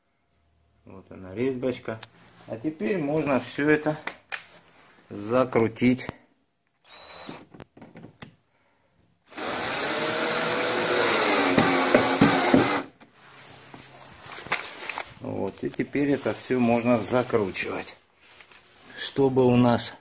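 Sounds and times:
electric drill driving screw: 0:06.8 - 0:07.6, 0:09.3 - 0:12.9.

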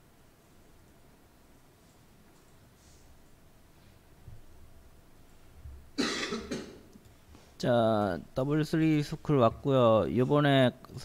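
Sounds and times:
person coughing: 0:06.0 - 0:06.9.

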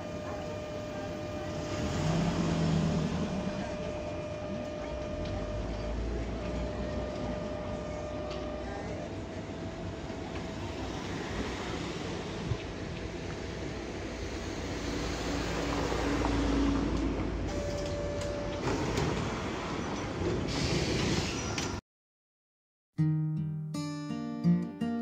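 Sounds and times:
streetcar rolling past: 0:00.0 - 0:21.8.

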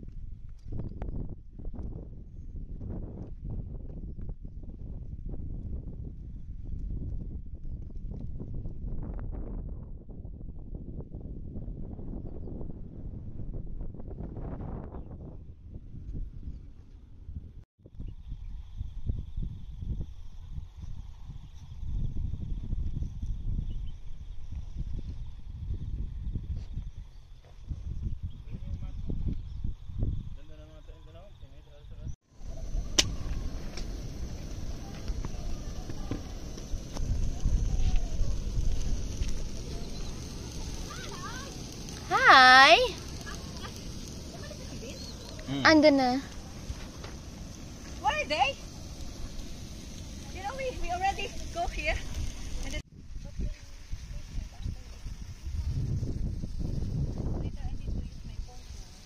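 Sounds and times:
wind buffeting microphone: 0:00.0 - 0:59.0
high insect drone: 0:18.0 - 0:59.0.

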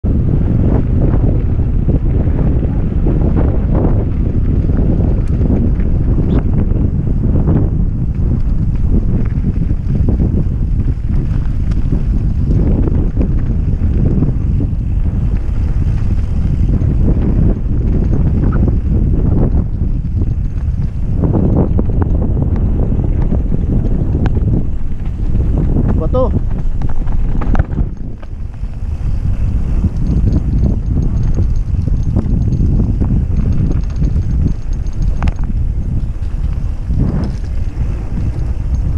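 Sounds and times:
wind buffeting microphone: 0:00.0 - 0:38.9
bike knocking over rough ground: 0:07.5 - 0:38.9.

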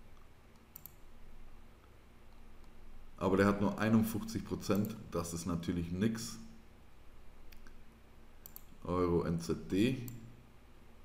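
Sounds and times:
computer mouse clicks: 0:00.1 - 0:01.0, 0:04.7 - 0:05.0, 0:07.5 - 0:07.8, 0:08.4 - 0:08.8.

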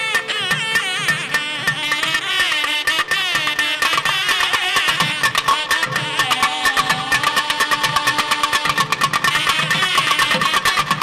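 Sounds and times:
rapid drum strokes: 0:00.0 - 0:11.0
reed instrument melody: 0:00.0 - 0:11.0.

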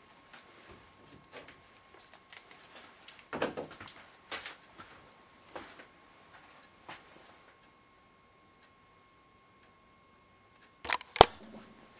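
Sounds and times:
faint high whine: 0:04.0 - 0:11.9
camera handling rustle: 0:10.9 - 0:11.3.

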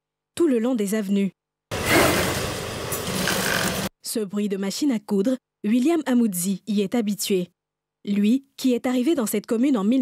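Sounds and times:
sewing machine stitching: 0:01.8 - 0:03.9.

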